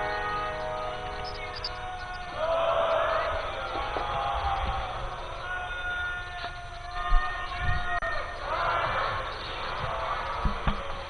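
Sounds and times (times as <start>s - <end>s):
congregation chanting: 0.0s - 10.8s.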